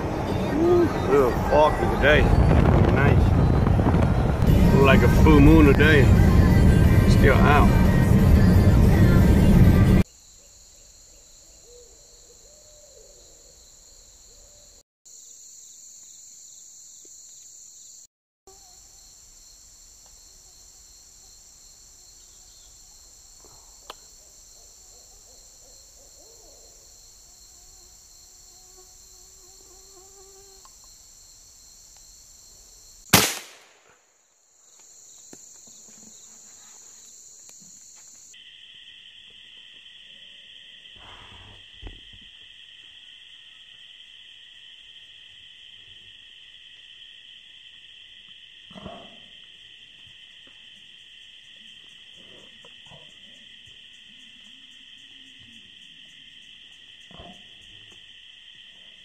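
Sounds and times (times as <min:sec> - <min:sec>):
insects buzzing: 0:00.0 - 0:59.0
rifle shot: 0:33.1 - 0:34.0.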